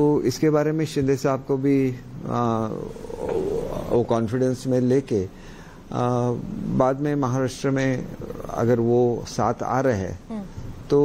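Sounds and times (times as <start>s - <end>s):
man speaking: 0.0s - 5.3s, 5.9s - 10.2s
man's wavering hesitation: 2.1s - 4.1s.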